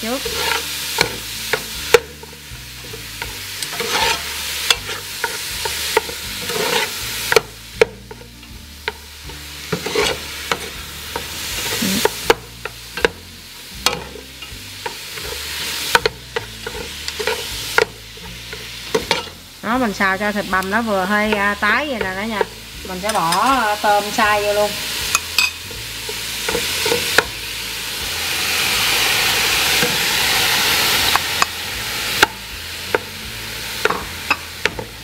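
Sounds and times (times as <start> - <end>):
meat sizzling in hot oil: 0.0 - 35.0
metal ladle clinking on pot: 25.1 - 25.6.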